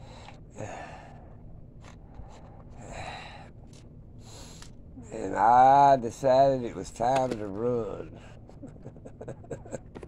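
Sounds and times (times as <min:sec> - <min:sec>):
man breathing close to microphone: 0:00.0 - 0:01.4, 0:02.0 - 0:03.6.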